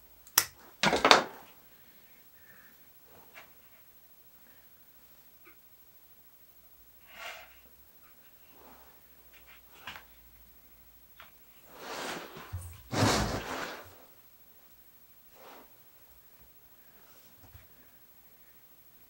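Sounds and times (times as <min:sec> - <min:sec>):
soft rustles: 0:11.2 - 0:14.2
scuffle with soft thump: 0:11.7 - 0:14.1.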